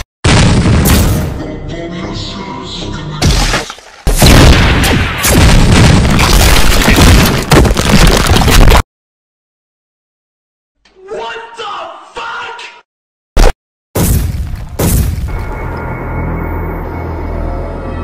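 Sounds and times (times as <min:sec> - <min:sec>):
booming sound effects: 0:00.2 - 0:01.4, 0:03.2 - 0:08.8, 0:13.4 - 0:15.7
soundtrack music: 0:15.3 - 0:18.0.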